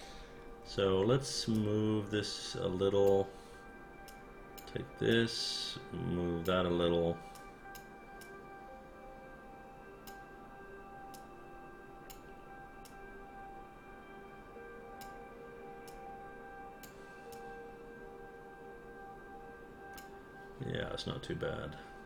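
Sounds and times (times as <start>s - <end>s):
background music of held tones: 0.0s - 22.0s.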